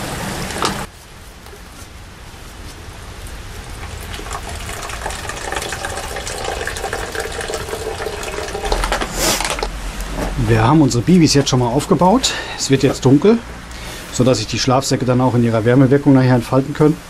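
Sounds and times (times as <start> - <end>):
stream trickling and splashing: 0.0 - 9.8
brief hiss: 9.1 - 9.5.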